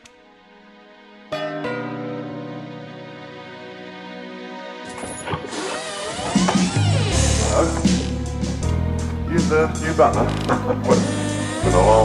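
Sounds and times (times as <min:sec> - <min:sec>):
soft music: 0:00.0 - 0:12.0
creaking door hinge: 0:04.8 - 0:08.8, 0:10.2 - 0:12.0.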